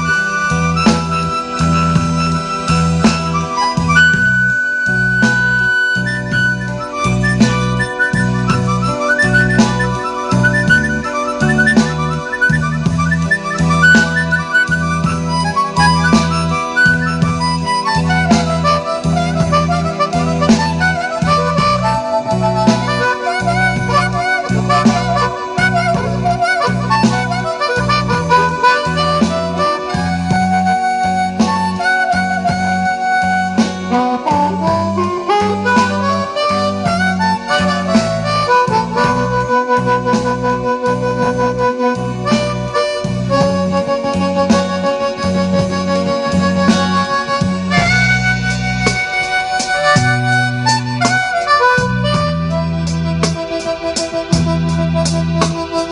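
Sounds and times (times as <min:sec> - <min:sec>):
backing track with bass and beat: 0:00.0 - 0:55.9
blues harmonica: 0:00.0 - 0:55.9.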